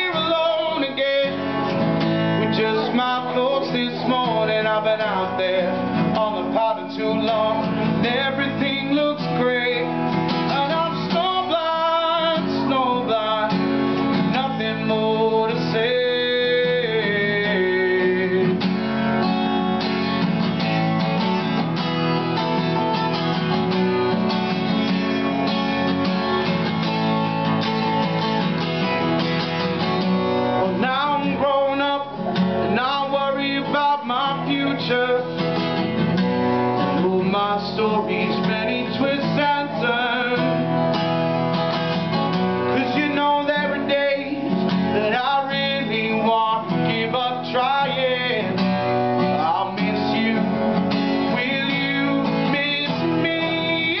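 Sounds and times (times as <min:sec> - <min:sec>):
man singing: 0:00.0 - 0:19.9, 0:30.3 - 0:41.0, 0:42.0 - 0:54.0
acoustic guitar strumming: 0:00.0 - 0:54.0.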